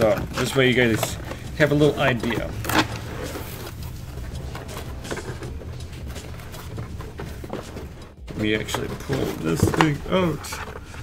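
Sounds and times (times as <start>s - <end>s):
cardboard rustles and scrapes: 0.0s - 11.0s
steady low hum: 2.4s - 8.4s.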